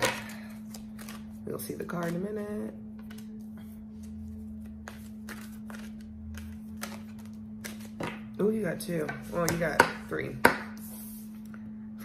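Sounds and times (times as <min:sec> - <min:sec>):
cards being shuffled: 0:00.0 - 0:02.3, 0:03.0 - 0:08.3
steady low hum: 0:00.0 - 0:12.0.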